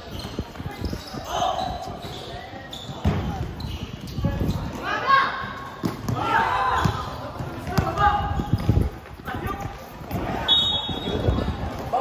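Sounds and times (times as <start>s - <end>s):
players shouting: 4.8s - 8.4s.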